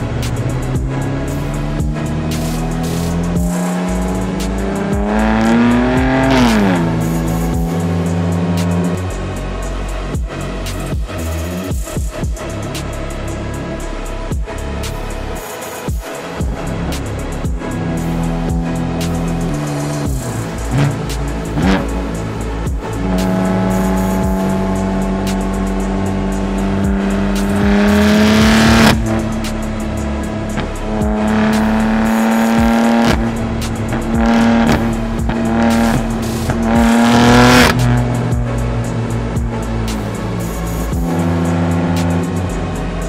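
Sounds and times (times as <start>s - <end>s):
car engine accelerating hard: 0.0s - 15.5s, 16.2s - 43.0s
music: 0.0s - 43.0s.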